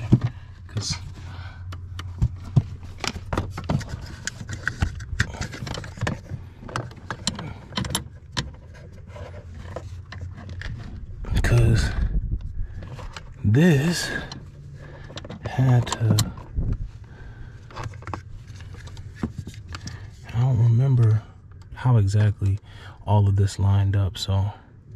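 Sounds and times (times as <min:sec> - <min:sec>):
small clicks and rattles of parts: 0:01.7 - 0:11.0.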